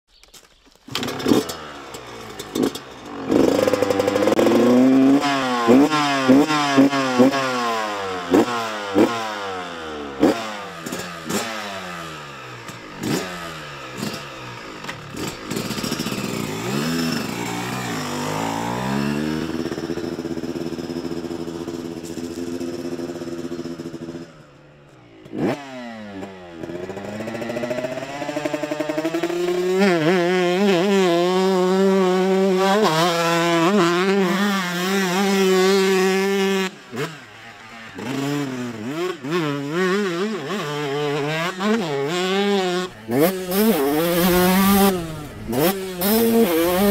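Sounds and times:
two-stroke motorbike engine revving: 0.9s - 46.9s.

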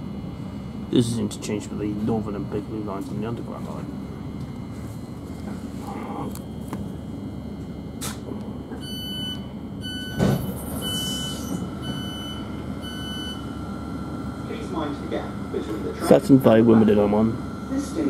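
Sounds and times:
train low rumble: 0.0s - 18.0s
door beeps: 8.7s - 13.5s.

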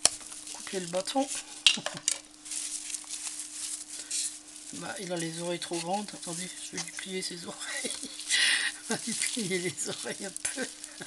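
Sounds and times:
faint steady hum: 0.0s - 11.0s
raffia and fabric rustling: 2.3s - 11.0s.

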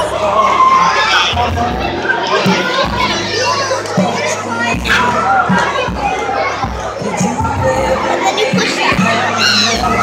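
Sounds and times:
crowd chattering and calling out: 0.0s - 10.0s
loud music with bass line: 0.0s - 10.0s.

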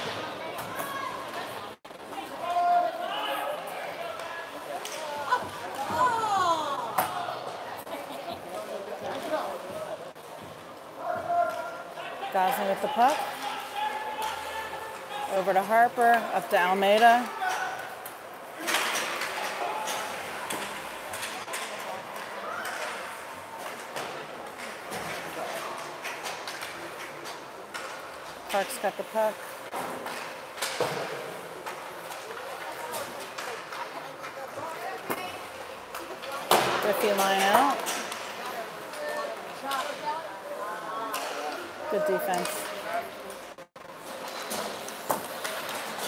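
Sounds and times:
spectators talking and calling out: 0.0s - 29.7s, 31.4s - 44.0s.

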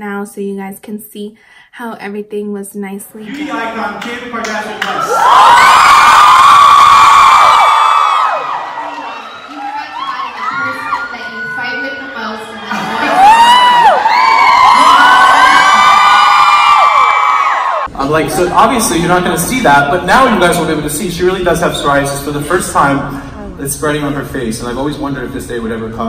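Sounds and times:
audience screaming and cheering: 3.3s - 19.0s.

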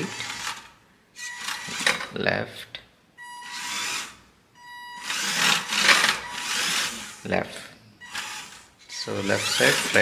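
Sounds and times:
small electric motor whining: 0.0s - 1.9s, 3.4s - 4.2s, 5.0s - 7.3s, 8.0s - 10.0s.

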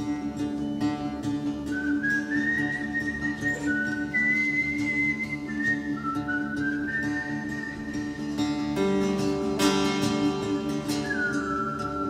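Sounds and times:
droning guitar: 0.0s - 12.0s
man whistling a slow melody: 1.4s - 8.9s, 10.0s - 12.0s.

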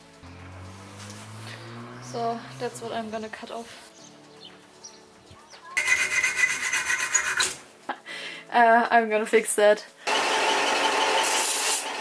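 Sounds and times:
hacksaw rasping on metal: 5.8s - 7.6s.

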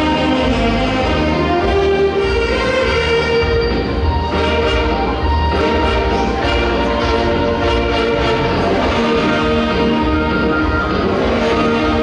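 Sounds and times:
saxophone ensemble chords: 0.0s - 12.0s.

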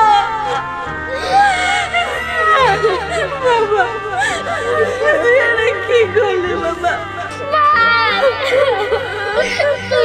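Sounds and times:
background music: 0.0s - 10.0s
women wailing and sobbing: 0.0s - 10.0s.

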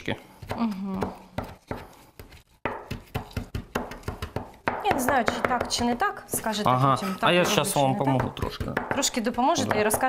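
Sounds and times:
knife chopping on cutting board: 0.3s - 6.8s, 7.4s - 10.0s.

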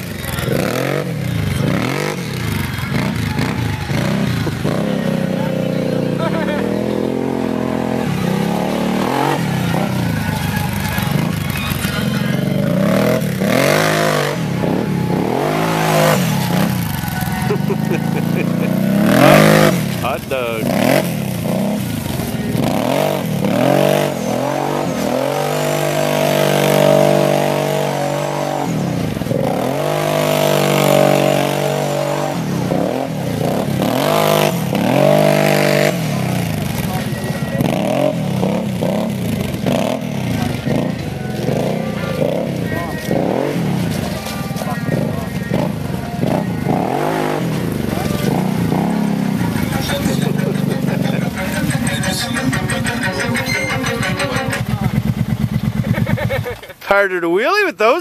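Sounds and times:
atv engine revving: 0.0s - 58.0s.

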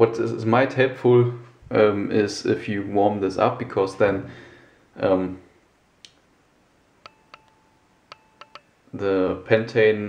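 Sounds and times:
brief ringing tone: 7.1s - 8.7s.

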